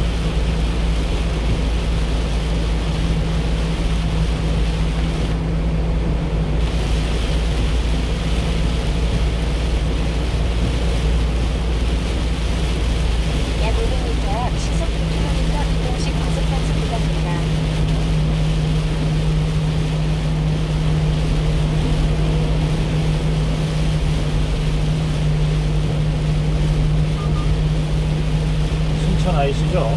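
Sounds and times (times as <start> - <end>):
low road rumble: 0.0 - 29.9
truck engine hum: 0.0 - 29.9
tyres hissing on wet road: 0.0 - 29.9.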